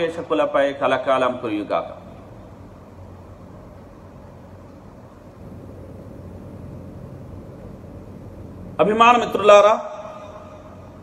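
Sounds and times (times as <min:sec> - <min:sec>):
low hum: 0:02.0 - 0:08.8.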